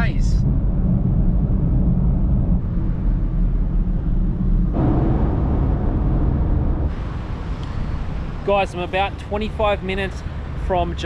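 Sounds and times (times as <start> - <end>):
car engine and road drone: 0.0 - 11.0.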